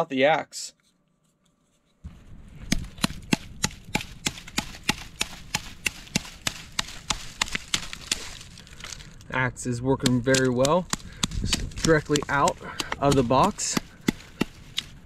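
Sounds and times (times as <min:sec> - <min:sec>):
hatchet chopping log: 0:02.7 - 0:08.5, 0:10.0 - 0:14.9.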